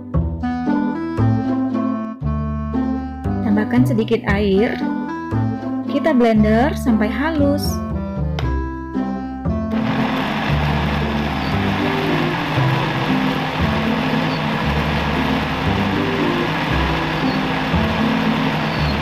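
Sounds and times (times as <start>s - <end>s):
background music with bass: 0.0s - 19.0s
blender motor running: 9.7s - 19.0s.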